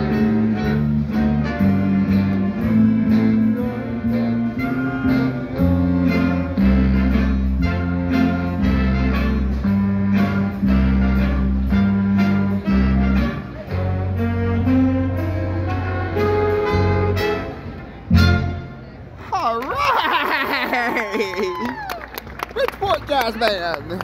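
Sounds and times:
jazz band playing: 0.0 - 19.6
crowd cheering: 19.2 - 24.0.

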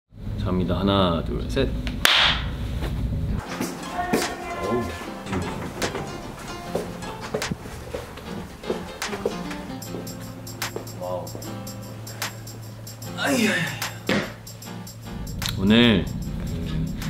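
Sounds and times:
hand clap: 2.0 - 2.4, 10.6 - 10.8
music with a light beat: 3.4 - 17.0.

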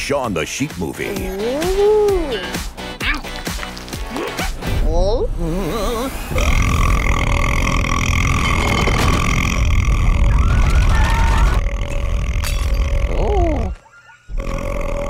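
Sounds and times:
cartoon burp: 5.7 - 10.4, 11.5 - 15.0.

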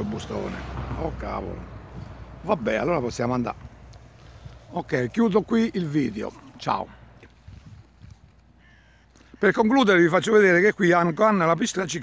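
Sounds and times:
short bird call: 8.5 - 9.6.

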